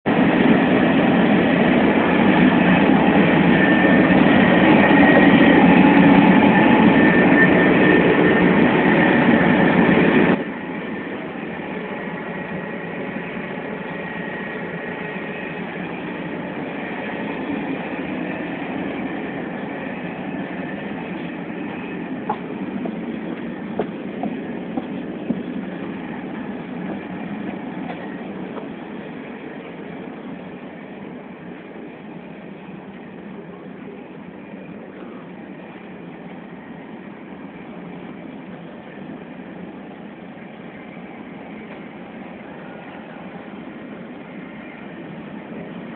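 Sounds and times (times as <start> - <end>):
faint high whine: 0.1 - 45.9
train running noise from inside: 0.1 - 45.9.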